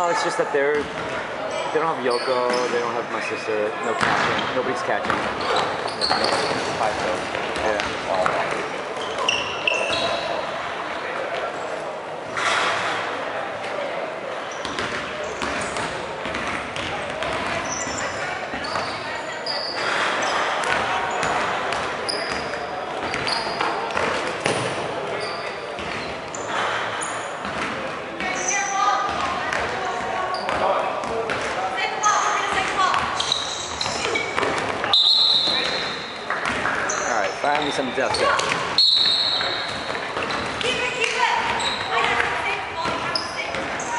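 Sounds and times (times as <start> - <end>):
balls bouncing on wooden floor: 4.0 - 9.4, 14.6 - 17.9, 33.8 - 43.9.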